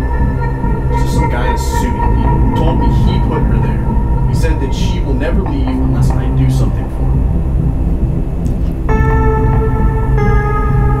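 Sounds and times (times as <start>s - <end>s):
low rumbling drone: 0.0s - 11.0s
sustained synthesizer chord: 0.0s - 11.0s.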